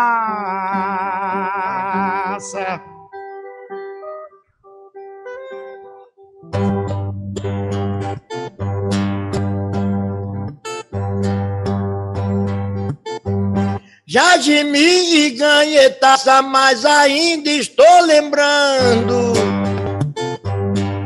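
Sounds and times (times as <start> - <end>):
acoustic guitars playing: 0.0 - 21.0.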